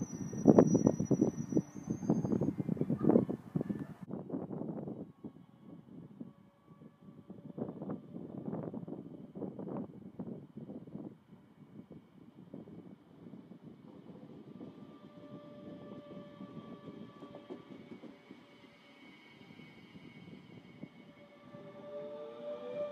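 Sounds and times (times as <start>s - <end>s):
electric train whine: 0.0s - 2.9s, 11.8s - 22.9s
train rumbling: 0.0s - 22.9s.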